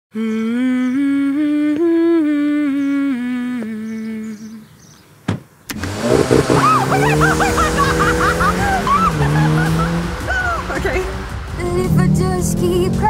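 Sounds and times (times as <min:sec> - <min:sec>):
person humming a slow tune: 0:00.1 - 0:04.8.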